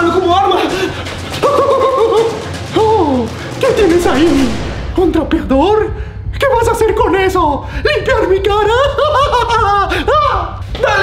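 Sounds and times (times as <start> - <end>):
low music drone: 0.0 - 10.4.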